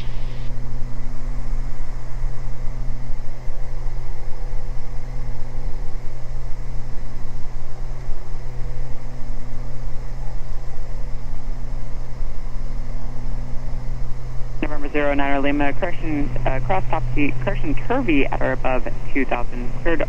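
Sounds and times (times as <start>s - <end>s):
propeller plane engines droning: 0.0s - 20.0s.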